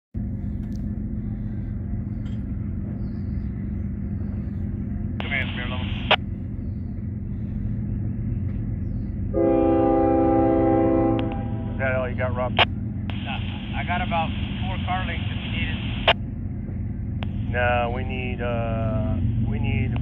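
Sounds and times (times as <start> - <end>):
low rumble: 0.2 - 20.0
locomotive air horn: 9.3 - 11.9.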